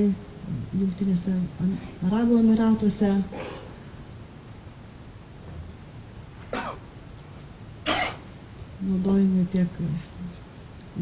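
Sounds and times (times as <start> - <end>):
low room hum: 0.0 - 11.0
person coughing: 3.3 - 3.7, 6.5 - 6.8, 7.9 - 8.2.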